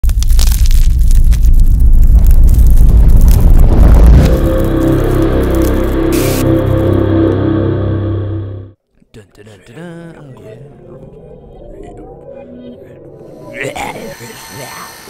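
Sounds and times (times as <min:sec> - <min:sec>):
rumbling explosion with debris: 0:00.0 - 0:06.3
sustained low musical chord: 0:03.9 - 0:08.8.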